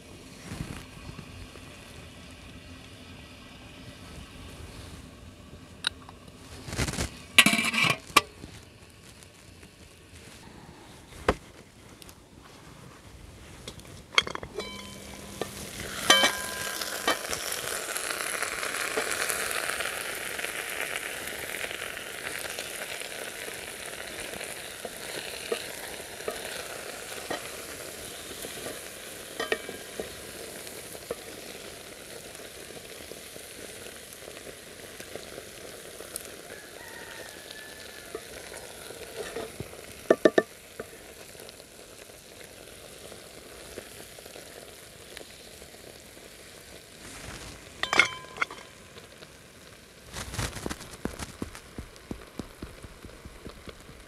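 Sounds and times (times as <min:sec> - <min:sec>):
stew sizzling and bubbling: 0:00.0 - 0:54.0
ringing metal clank: 0:14.2 - 0:17.2, 0:47.8 - 0:48.7
spoon knocking against pot: 0:40.1 - 0:40.5.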